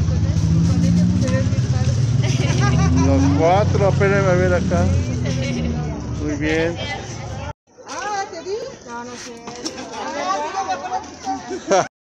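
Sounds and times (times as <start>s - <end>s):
voices: 0.0s - 11.9s.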